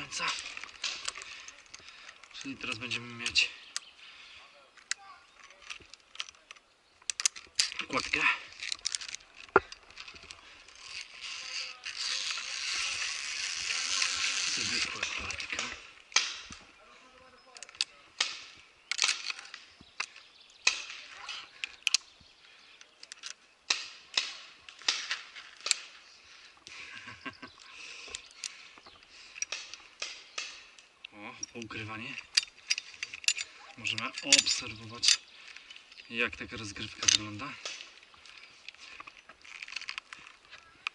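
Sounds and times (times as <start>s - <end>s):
carabiners clinking on cable: 0.0s - 3.9s, 4.8s - 16.7s, 17.4s - 22.2s, 22.8s - 26.0s, 27.0s - 40.9s.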